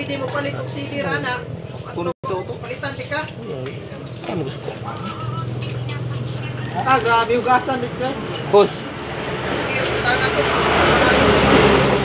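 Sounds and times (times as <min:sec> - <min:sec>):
low vehicle engine hum: 0:00.0 - 0:12.0.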